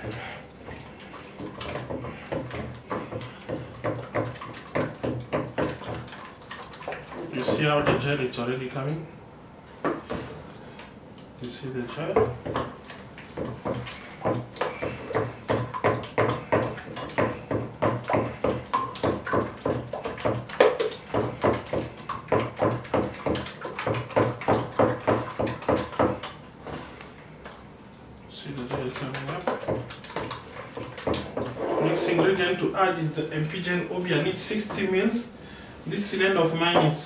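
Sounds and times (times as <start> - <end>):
stick stirring gel in bucket: 0.0 - 8.8, 9.9 - 27.7, 28.3 - 35.3.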